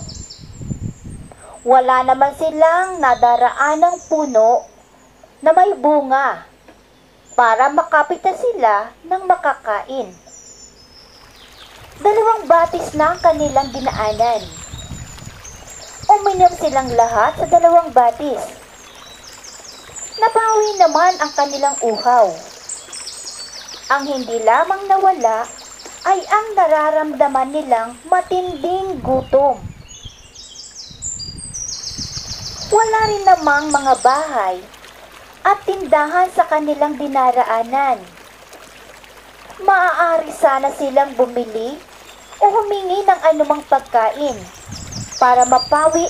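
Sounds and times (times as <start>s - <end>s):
faint bird chirps: 10.0s - 34.6s, 40.6s - 46.0s.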